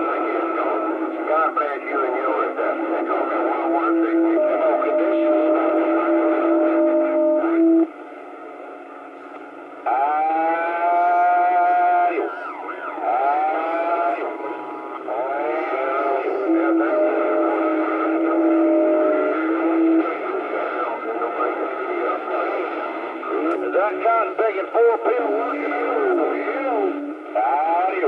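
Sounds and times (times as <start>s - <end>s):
garbled radio voices: 0.0s - 7.9s, 9.8s - 28.0s
held radio tones: 0.0s - 8.3s, 9.1s - 28.0s
radio static hiss: 0.0s - 28.0s.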